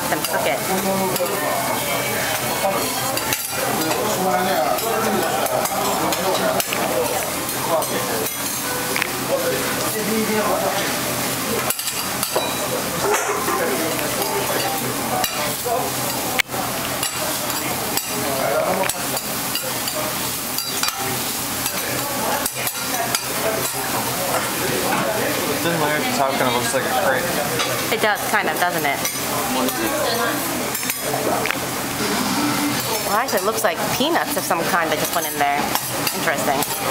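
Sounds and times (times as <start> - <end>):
food sizzling on griddle: 0.0 - 36.9
metal spatulas scraping griddle: 32.0 - 33.0.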